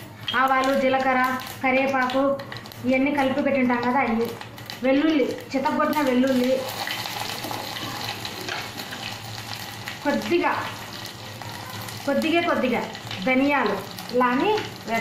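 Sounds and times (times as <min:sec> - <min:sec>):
garlic sizzling in hot oil: 0:00.1 - 0:15.0.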